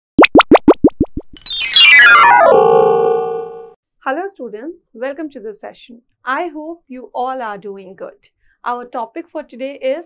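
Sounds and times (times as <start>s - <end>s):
rising bubble-like bloops: 0.2s - 3.6s
bright tones falling in pitch: 1.4s - 3.7s.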